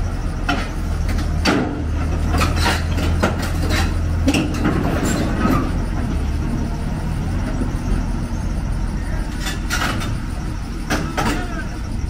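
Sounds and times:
excavator diesel engine rumbling: 0.0 - 12.0.

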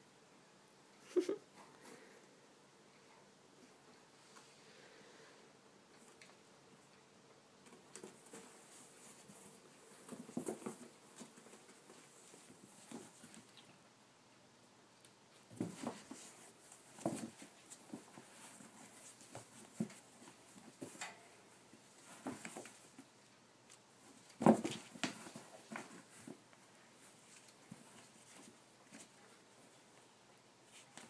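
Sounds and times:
kittens tussling on foam mats: 7.6 - 13.8, 15.3 - 31.0
kittens thumping on foam mats: 15.5 - 21.0, 24.1 - 26.4.

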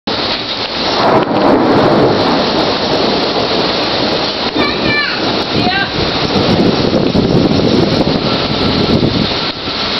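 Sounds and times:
torrential rain and wind: 0.1 - 9.9.

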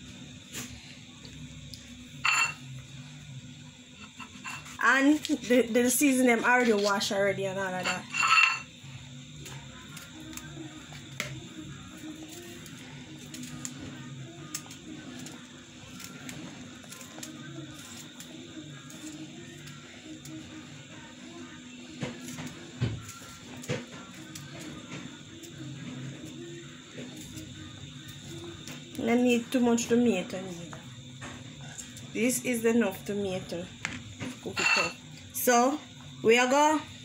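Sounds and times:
faint background music: 0.0 - 37.0.

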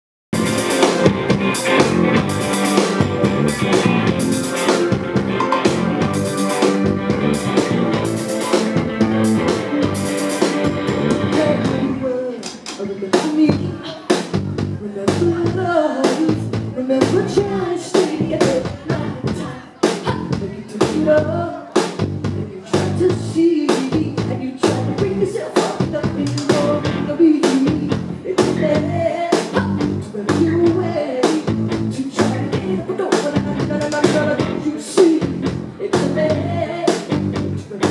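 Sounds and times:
drum kit: 0.3 - 37.9
electric guitar: 0.4 - 12.3, 30.7 - 37.9.

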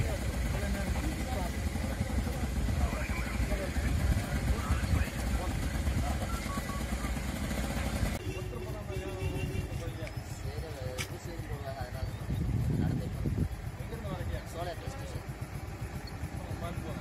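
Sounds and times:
people talking: 0.0 - 7.1, 8.2 - 15.4, 16.0 - 17.0
small engine idling: 0.0 - 17.0.

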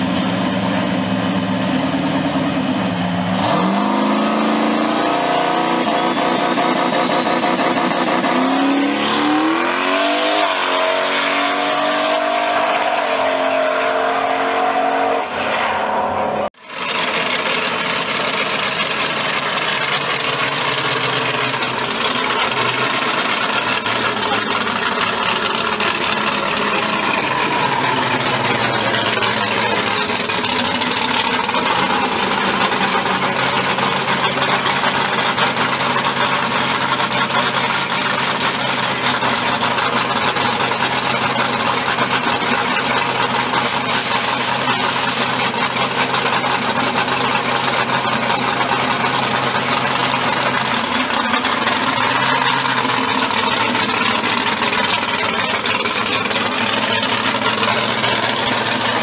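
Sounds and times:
engine running steadily: 0.0 - 13.4, 16.4 - 59.0
drag racing car accelerating: 0.0 - 59.0
turbo whistle: 4.8 - 16.5.

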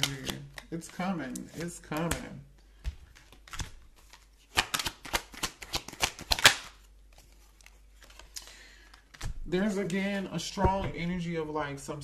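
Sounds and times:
cards being shuffled: 0.0 - 10.3.

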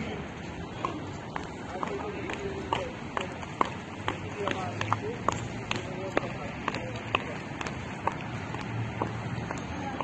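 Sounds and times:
background voices: 0.0 - 10.0
shoe clicks on hard paving: 0.7 - 10.0.

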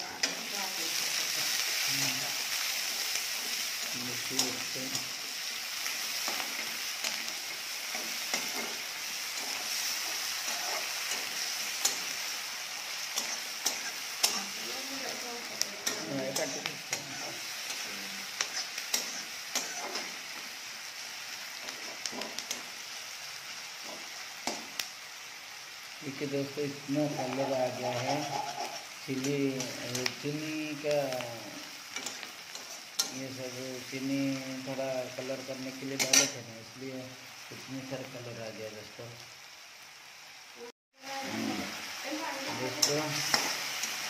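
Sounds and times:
onions sizzling in oil: 0.0 - 44.0
metal spatula scraping pan: 42.5 - 44.0.

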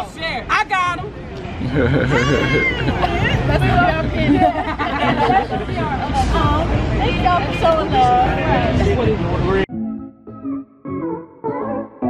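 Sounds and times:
women chattering and laughing: 1.6 - 9.1.

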